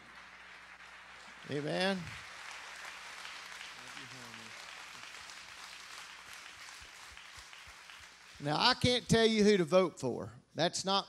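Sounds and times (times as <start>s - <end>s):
audience clapping: 0.0s - 9.5s.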